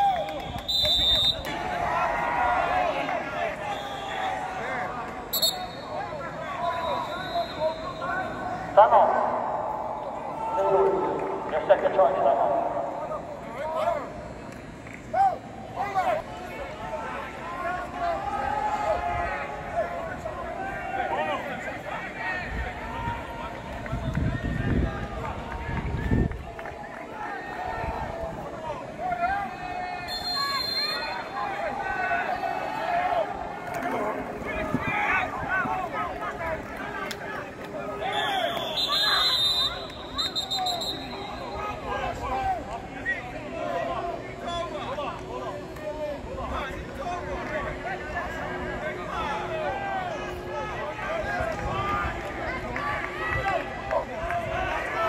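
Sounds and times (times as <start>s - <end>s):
people calling and talking: 0.0s - 55.0s.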